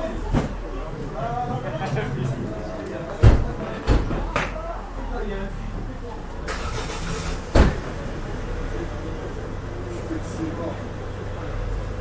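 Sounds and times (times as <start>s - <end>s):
faint voices: 0.0s - 12.0s
vehicle engine running: 0.0s - 12.0s.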